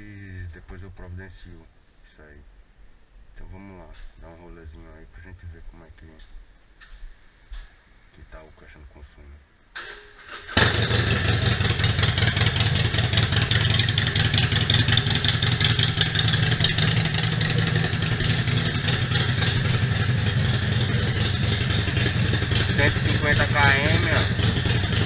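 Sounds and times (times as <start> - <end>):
motorcycle engine running: 10.6 - 25.0.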